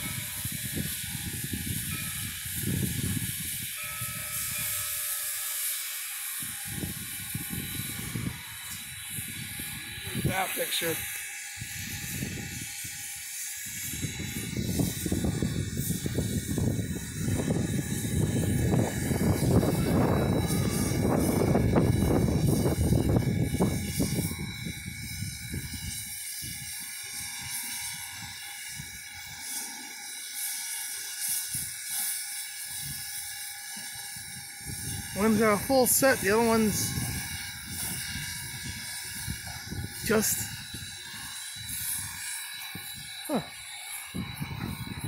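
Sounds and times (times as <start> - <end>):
steam locomotives hissing: 0.0 - 45.0.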